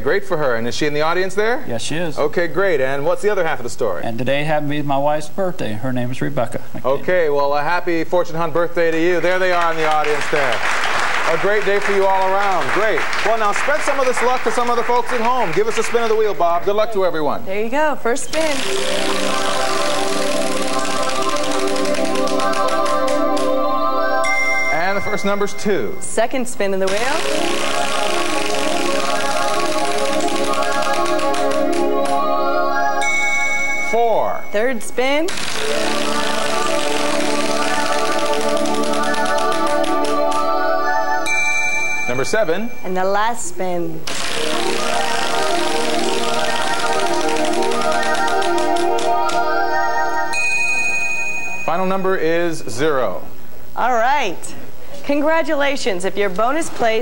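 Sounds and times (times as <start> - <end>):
background music: 0.0 - 5.5, 7.0 - 53.4
prize wheel spinning: 9.0 - 16.6, 18.3 - 32.4, 33.0 - 43.2, 44.0 - 52.3
prize wheel pointer clicking: 26.9 - 32.2, 35.3 - 40.5, 44.1 - 49.5.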